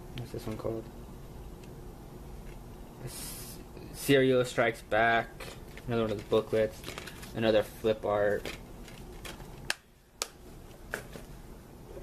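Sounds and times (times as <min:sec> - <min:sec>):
plastic cases being handled: 0:05.4 - 0:07.4, 0:08.2 - 0:09.7.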